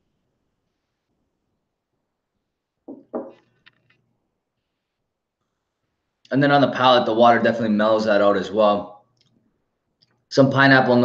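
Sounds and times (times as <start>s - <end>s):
faint clicks: 9.1s - 10.3s.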